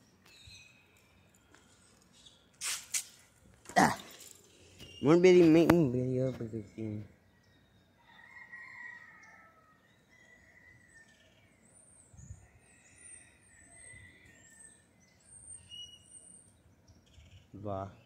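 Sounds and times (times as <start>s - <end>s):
birds chirping: 3.3s - 18.0s.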